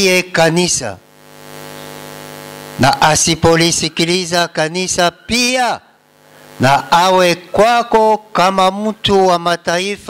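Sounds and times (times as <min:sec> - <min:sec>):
man reading aloud: 0:00.0 - 0:01.0, 0:02.8 - 0:05.9, 0:06.6 - 0:10.0
electrical mains hum: 0:00.0 - 0:10.0.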